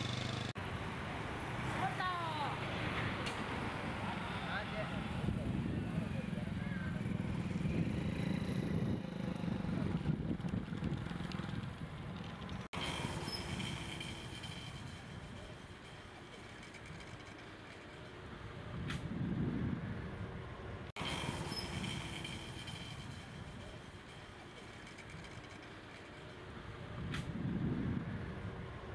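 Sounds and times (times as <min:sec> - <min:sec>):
vehicles rumbling past: 0:00.0 - 0:28.9.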